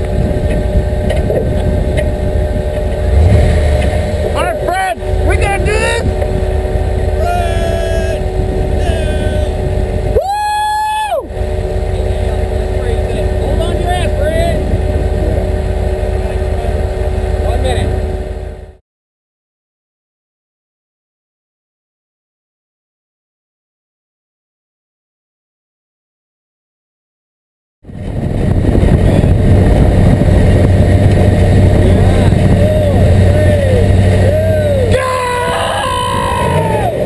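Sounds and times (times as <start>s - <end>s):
engine idling: 0.0s - 18.8s, 28.5s - 37.0s
loud held tone: 4.0s - 18.8s
voices calling out: 4.2s - 18.0s, 31.8s - 37.0s.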